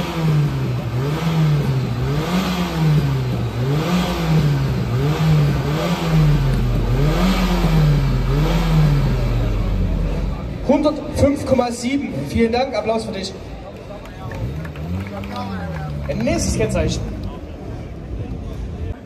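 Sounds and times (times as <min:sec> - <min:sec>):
car engine revving: 0:00.0 - 0:18.9.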